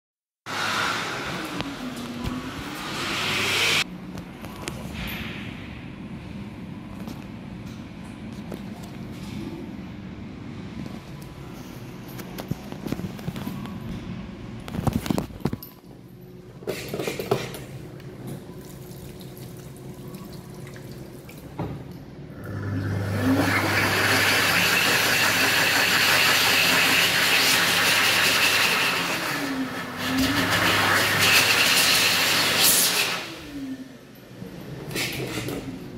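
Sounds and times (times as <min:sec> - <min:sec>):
hand dryer blowing: 0:00.4 - 0:03.8, 0:22.4 - 0:33.7
washroom noise: 0:00.4 - 0:07.4, 0:16.4 - 0:35.9.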